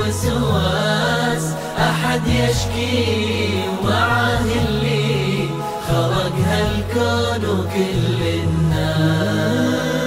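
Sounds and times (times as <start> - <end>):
man singing long held notes: 0.0 - 10.0.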